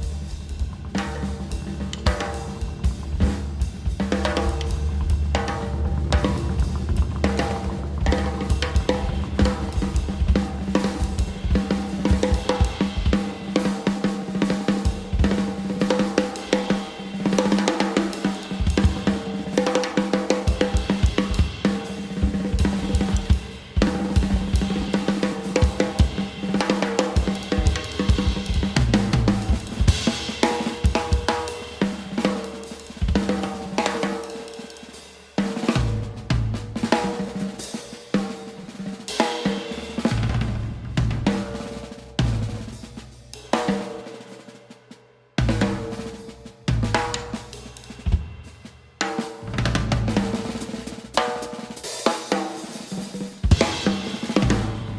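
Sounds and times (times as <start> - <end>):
drum kit patterns: 0.0 - 44.8, 45.4 - 54.9
double bass: 2.6 - 10.7, 40.2 - 41.4, 49.4 - 50.4, 54.5 - 54.9
heavy low hit: 4.5 - 10.6, 54.4 - 54.9.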